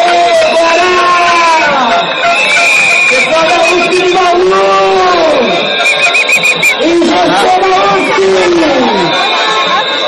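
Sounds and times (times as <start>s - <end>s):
marching crowd voices: 0.0s - 10.0s.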